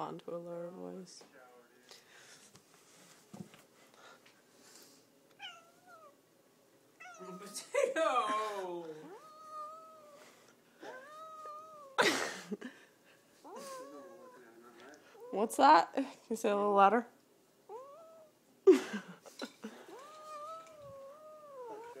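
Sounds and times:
cat meowing: 5.4s - 6.2s, 7.0s - 7.7s, 9.0s - 12.0s, 13.4s - 14.6s, 17.7s - 18.4s, 19.8s - 22.0s.

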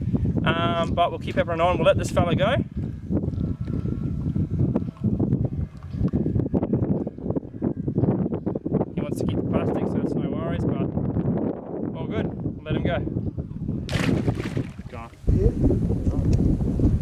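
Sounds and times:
wind rumbling on microphone: 0.0s - 17.0s.

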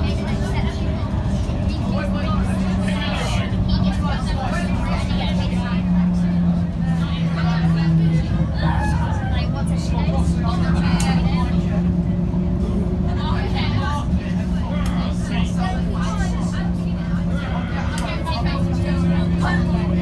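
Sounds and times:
bus diesel engine humming: 0.0s - 20.0s
passengers chattering: 0.0s - 20.0s.

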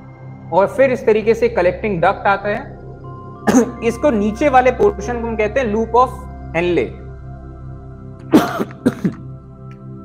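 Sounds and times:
soft background music: 0.0s - 10.0s
man clearing his throat: 3.5s - 3.8s, 8.3s - 9.2s.

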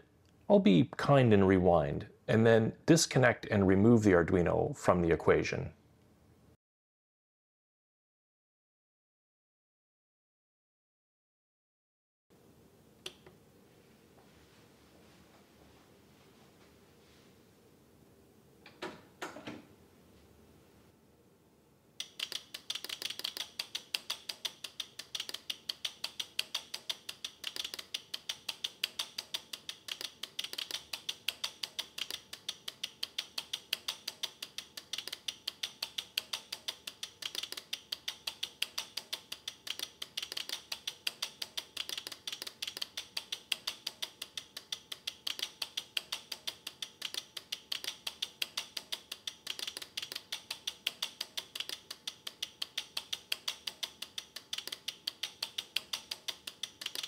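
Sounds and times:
relays clicking rapidly: 22.0s - 57.0s.

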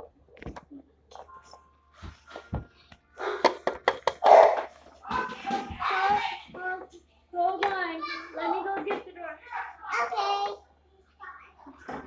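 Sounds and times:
plastic toys clicking and knocking: 3.3s - 5.8s
child making wordless sounds: 9.5s - 11.8s.

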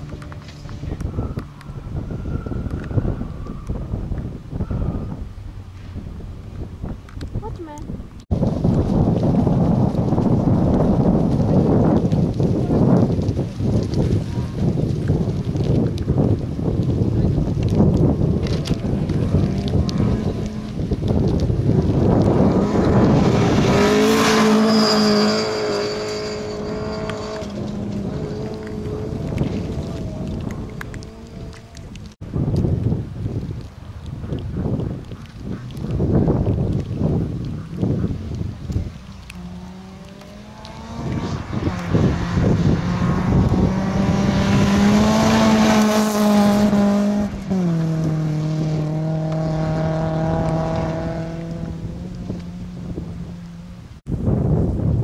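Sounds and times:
tyres on gravel: 7.0s - 32.7s, 34.6s - 53.1s
rally car engine revving: 17.3s - 32.1s, 39.2s - 53.8s.

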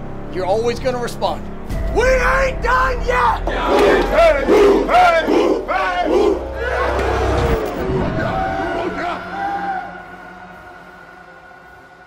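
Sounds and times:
group shouting battle cry: 2.6s - 10.1s.

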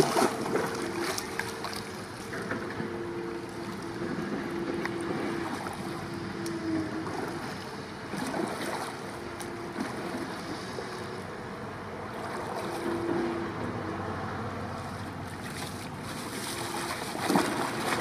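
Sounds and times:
paddle strokes splashing in water: 0.0s - 11.0s, 12.1s - 13.2s, 14.8s - 18.0s
faint hum: 0.0s - 18.0s.

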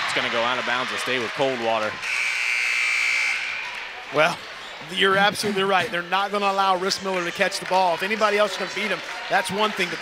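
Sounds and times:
scoreboard buzzer: 2.0s - 3.6s.

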